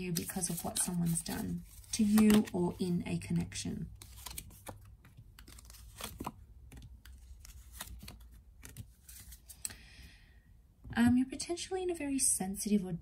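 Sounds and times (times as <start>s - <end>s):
card sliding rustle: 0.1s - 2.6s, 4.0s - 9.6s.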